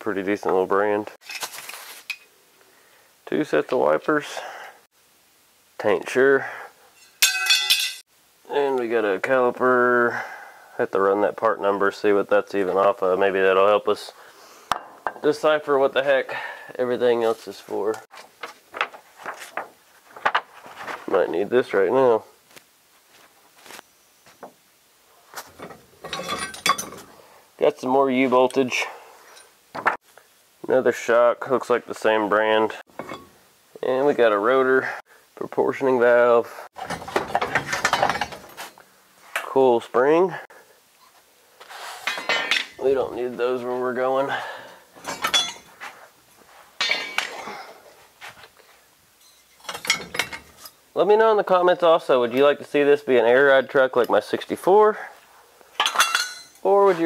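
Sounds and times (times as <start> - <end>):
metal parts clanking and rattling: 7.0 - 8.0, 25.4 - 27.1, 33.0 - 33.3, 36.8 - 38.7, 42.0 - 42.8, 45.0 - 45.8, 46.8 - 47.4, 49.2 - 50.8, 55.8 - 56.6
metallic ring: 7.0 - 8.0, 45.0 - 45.7, 49.2 - 50.8, 55.8 - 56.6.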